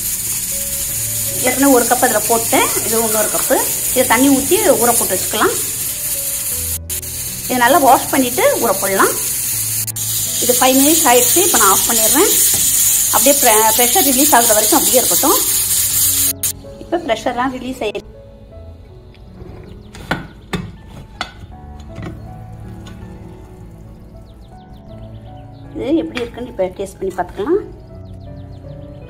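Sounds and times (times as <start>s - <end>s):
steady high hiss: 0.0s - 16.8s
background music: 0.0s - 29.0s.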